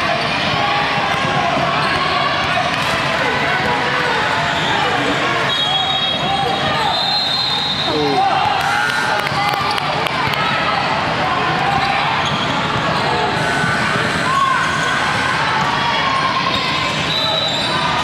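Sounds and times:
many voices chattering: 0.0s - 18.0s.

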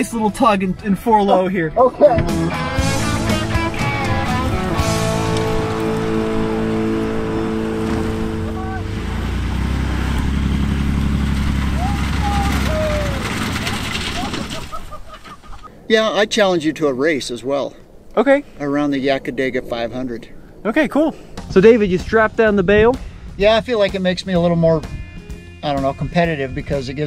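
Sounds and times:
background music with guitar: 0.7s - 10.2s, 22.0s - 27.0s
pickup truck engines rumbling: 1.8s - 16.9s.

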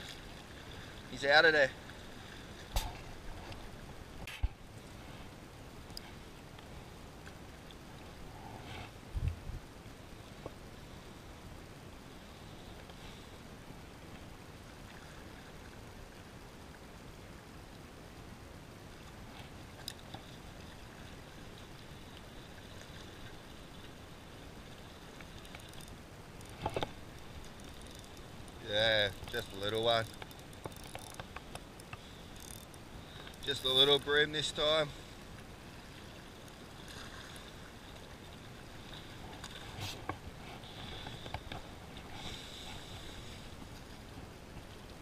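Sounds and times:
water lapping against rocks: 19.1s - 45.0s.

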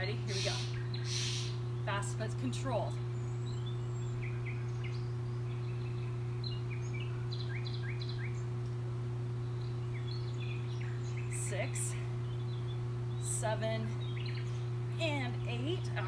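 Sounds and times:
small birds chirping: 0.0s - 16.0s
steady low hum: 0.0s - 16.0s.

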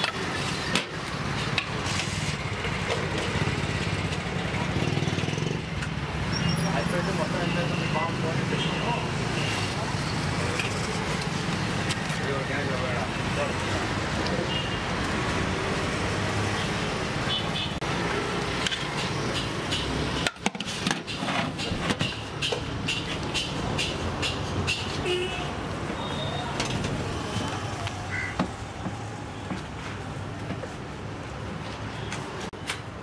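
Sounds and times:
traffic rumble: 0.0s - 33.0s.

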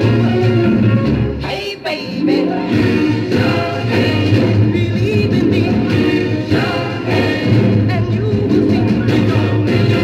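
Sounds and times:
soul song on a turntable: 0.0s - 10.0s.

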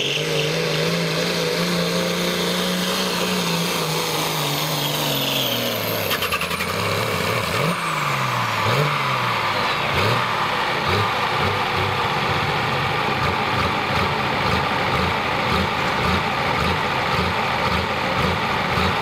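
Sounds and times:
diesel engine winding down: 0.0s - 19.0s.

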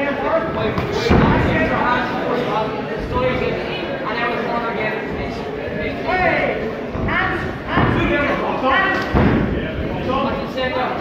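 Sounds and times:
heavy thud: 7.0s - 8.3s, 9.0s - 9.8s.

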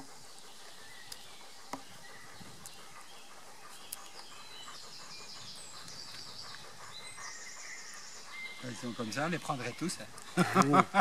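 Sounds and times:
small bird twittering: 0.0s - 10.4s
faint outdoor background noise: 0.0s - 11.0s.

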